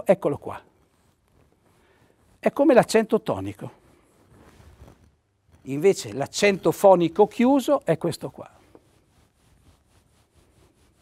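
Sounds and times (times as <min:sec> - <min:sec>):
marker scratching on paper: 0:00.8 - 0:05.1, 0:08.6 - 0:11.0.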